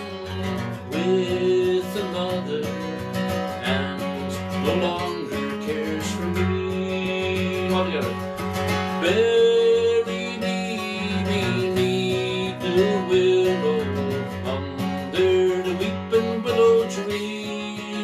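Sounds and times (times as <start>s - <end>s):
acoustic guitar strumming: 0.0s - 18.0s
man singing: 0.0s - 18.0s.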